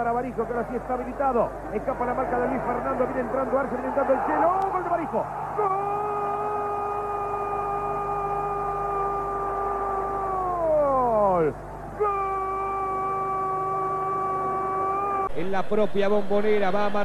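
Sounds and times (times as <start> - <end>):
commentator's long goal cry: 5.5 - 11.4.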